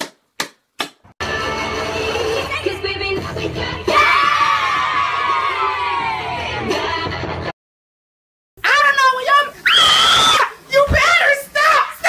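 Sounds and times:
person yelling and screaming: 8.6 - 12.0.

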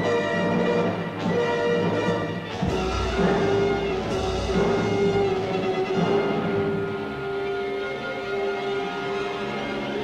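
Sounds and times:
orchestra holding a chord: 2.6 - 7.2.

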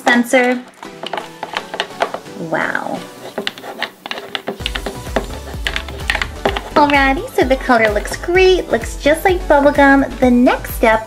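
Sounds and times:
background music: 0.0 - 11.0
spoon stirring glue in plastic bowl: 0.8 - 9.3.

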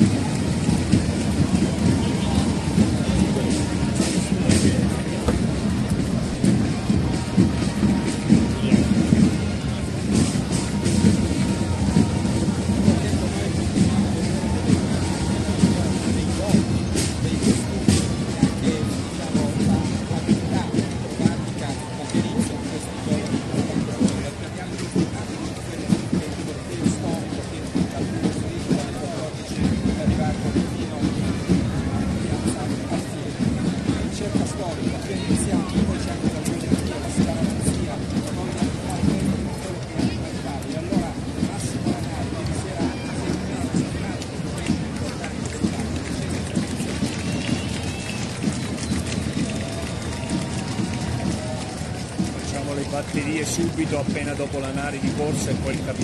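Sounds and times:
side drums playing: 0.0 - 28.8, 29.6 - 56.0
crowd chatter: 0.0 - 56.0.

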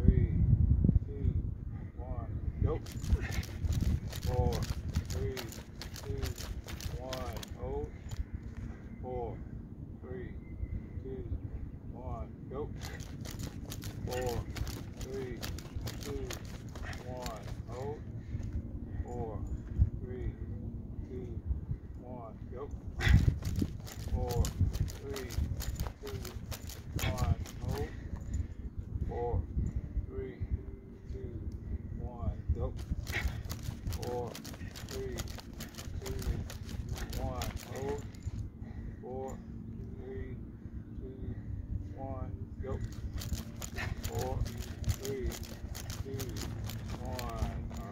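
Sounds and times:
running footsteps on dirt: 2.8 - 8.6, 12.8 - 18.7, 23.0 - 28.3, 32.8 - 38.4, 42.8 - 47.9.

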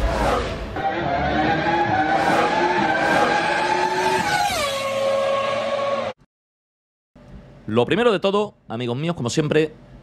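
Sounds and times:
racing car engine: 0.0 - 6.2.

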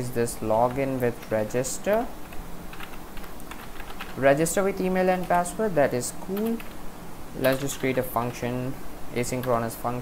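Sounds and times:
typing on computer keyboard: 1.9 - 4.2.

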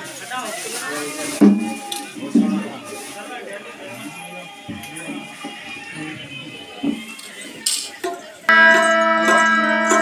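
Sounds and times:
drum strokes: 1.3 - 2.7, 8.0 - 10.0
harmonium chord: 8.5 - 10.0.

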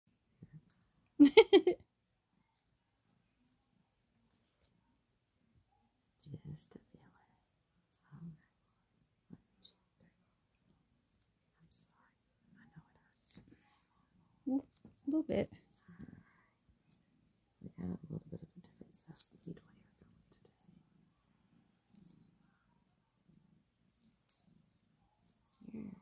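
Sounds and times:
person murmuring and whispering: 25.4 - 26.0.

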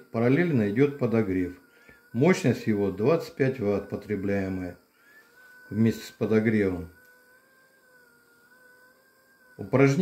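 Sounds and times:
small electric motor whining: 0.0 - 10.0.

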